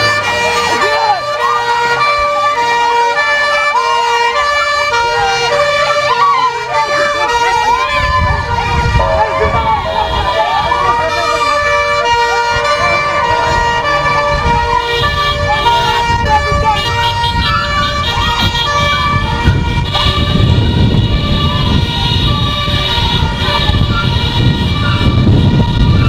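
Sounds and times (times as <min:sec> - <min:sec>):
crowd shouting: 0:00.0 - 0:26.0
police sirens: 0:00.0 - 0:26.0
microphone handling rumble: 0:07.8 - 0:26.0.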